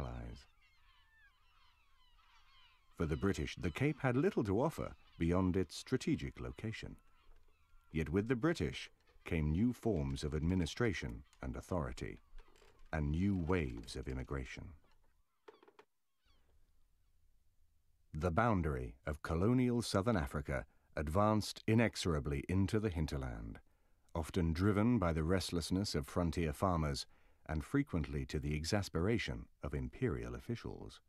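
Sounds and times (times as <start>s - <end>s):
faint high wavering cries: 0.0s - 9.2s
faint short bird calls: 0.0s - 13.9s, 14.6s - 16.6s.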